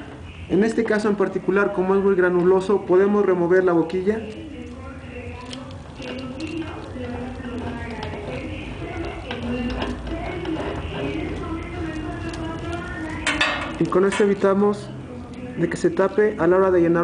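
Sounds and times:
low voices murmuring: 0:04.3 - 0:13.8.

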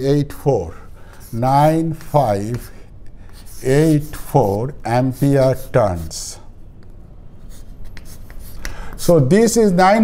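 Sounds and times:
steady low hum: 0:00.0 - 0:10.0
chalk writing on chalkboard: 0:01.1 - 0:06.3, 0:07.4 - 0:09.1.

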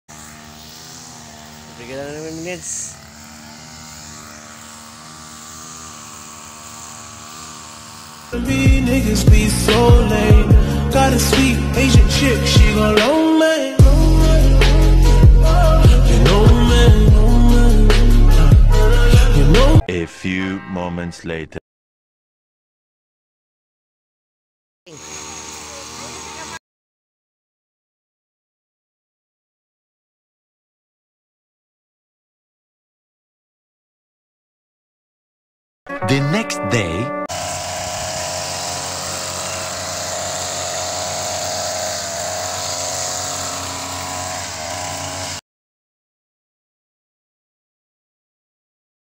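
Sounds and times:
man speaking: 0:01.8 - 0:03.0, 0:19.8 - 0:21.6, 0:35.9 - 0:37.2
people's voices: 0:19.8 - 0:21.6, 0:36.0 - 0:37.2.

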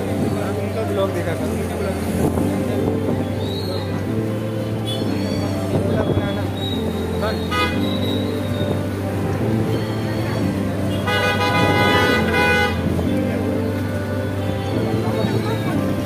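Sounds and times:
vehicle horn honking: 0:07.5 - 0:08.0, 0:10.9 - 0:12.8.

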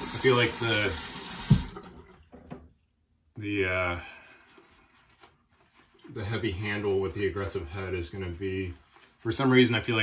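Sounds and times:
water running from tap into sink: 0:00.0 - 0:02.1
thump: 0:01.5 - 0:01.8.

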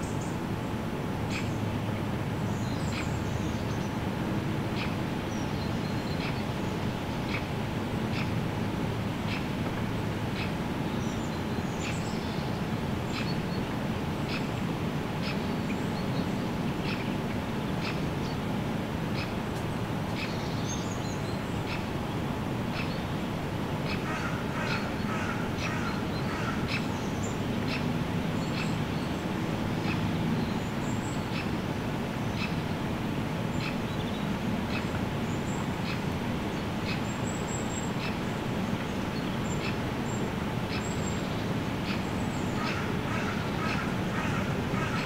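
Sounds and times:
birds calling and chirping: 0:01.2 - 0:45.0.

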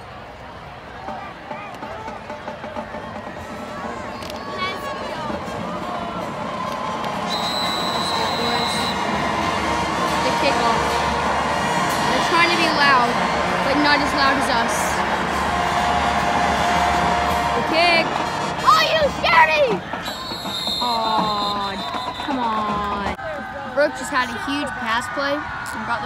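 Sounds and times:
stadium crowd cheering: 0:00.0 - 0:26.0
whistle blast: 0:07.2 - 0:09.1, 0:20.0 - 0:22.6.

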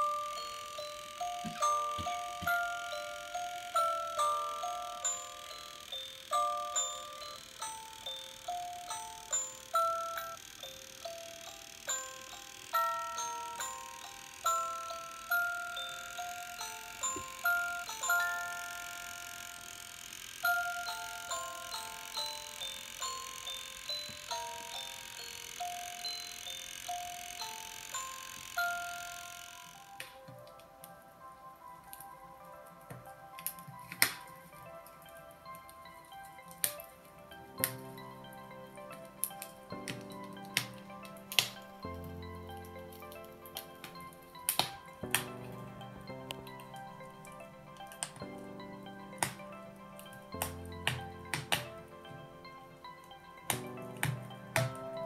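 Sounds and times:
electronic chime melody: 0:00.0 - 0:30.0.

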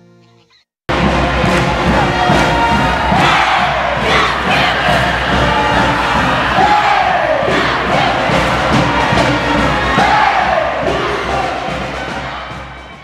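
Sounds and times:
crowd cheering and shouting: 0:00.9 - 0:13.0.

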